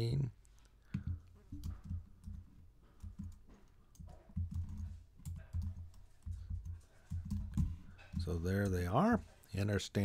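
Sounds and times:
typing on computer keyboard: 1.0 - 7.7.

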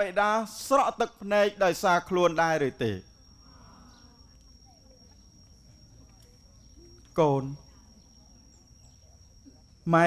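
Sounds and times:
steady high-pitched whine: 0.0 - 10.0.

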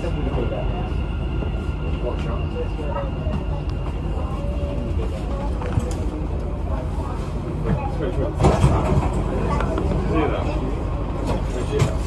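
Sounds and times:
faint passengers' voices: 0.0 - 12.0
train cabin rumbling: 0.0 - 12.0.

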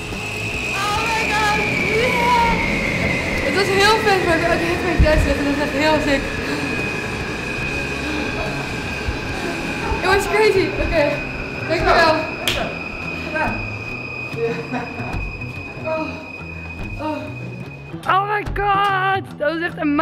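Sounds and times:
wind tunnel fans whining: 0.0 - 18.5
excited high-pitched voices: 0.8 - 6.5.

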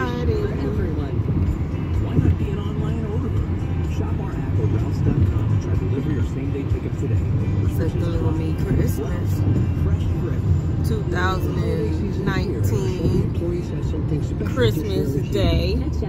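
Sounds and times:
car radio music and voices: 0.0 - 16.0
road and engine rumble: 0.0 - 16.0.

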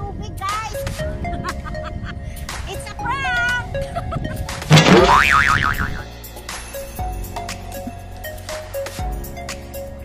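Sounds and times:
background music: 0.0 - 10.0
comic effect with warbling pitch: 4.7 - 6.0
short wobbling tone: 4.7 - 6.0.

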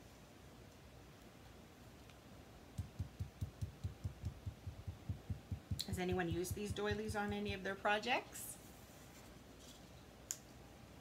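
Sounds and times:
sponge dauber soft thumps: 2.8 - 7.6.

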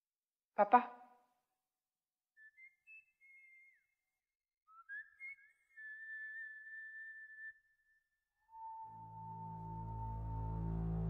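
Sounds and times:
person whistling: 2.4 - 4.1, 4.7 - 10.0.

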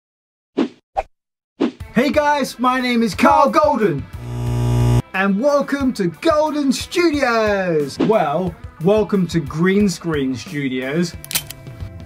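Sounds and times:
music: 1.8 - 12.0.

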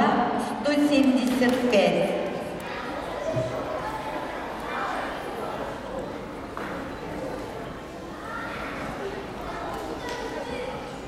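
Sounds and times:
sports hall ambience: 0.0 - 11.0.

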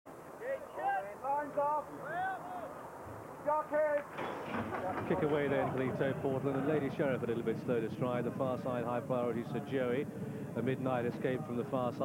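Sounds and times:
horse race commentator speaking: 0.4 - 2.8, 4.7 - 12.0.

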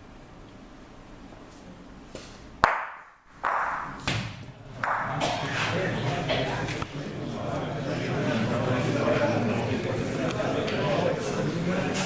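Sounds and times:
bocce ball striking another: 2.6 - 5.4.

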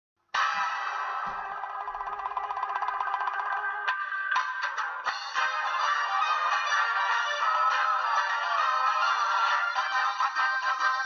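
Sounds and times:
music with fast pulse: 0.4 - 11.0.

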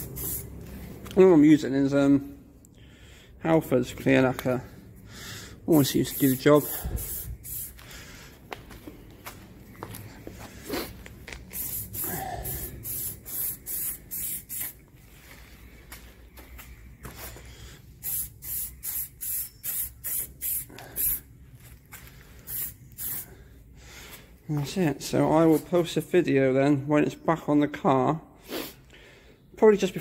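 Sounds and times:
aerosol can spraying: 0.0 - 0.9, 5.8 - 7.8, 11.4 - 14.8, 18.0 - 21.2, 22.4 - 23.3.

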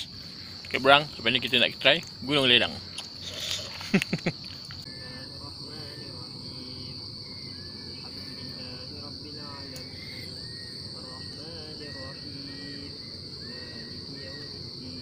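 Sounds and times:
insect chorus: 0.0 - 15.0
voices and laughter: 3.1 - 4.8.

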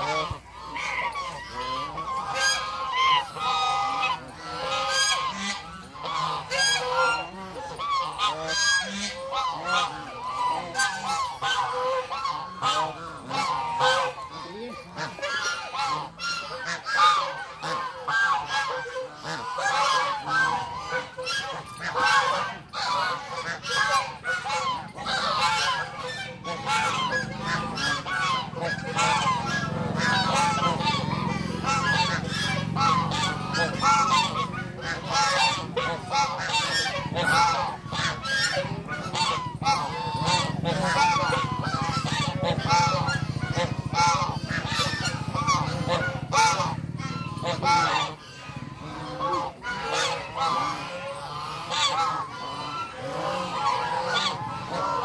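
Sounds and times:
geese honking: 0.0 - 55.0.

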